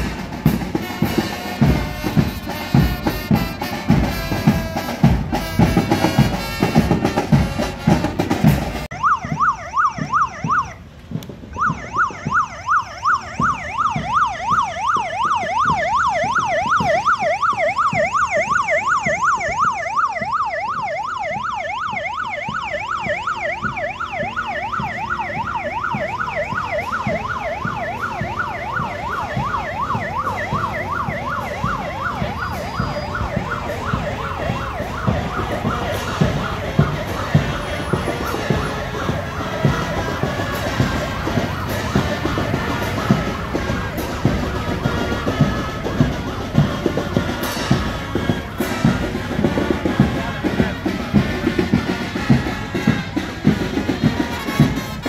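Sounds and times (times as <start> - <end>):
drumbeats: 0.0 - 55.0
electronic siren yelping: 8.9 - 10.8, 11.5 - 52.0.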